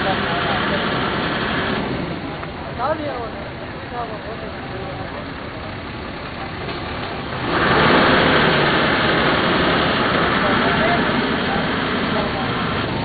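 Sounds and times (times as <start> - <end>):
vehicle engine running: 0.0 - 13.0
voices: 0.0 - 13.0.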